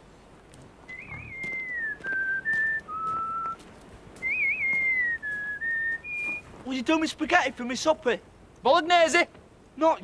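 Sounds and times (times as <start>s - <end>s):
person whistling a tune: 0.9s - 3.6s, 4.2s - 6.4s.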